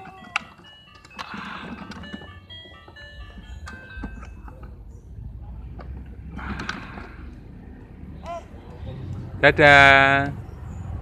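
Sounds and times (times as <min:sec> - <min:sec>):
electronic beeping tune: 0:00.6 - 0:04.6.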